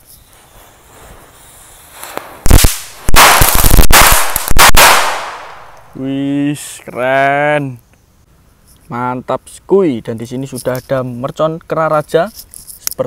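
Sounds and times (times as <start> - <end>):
firecrackers banging and crackling: 0.6 - 5.8.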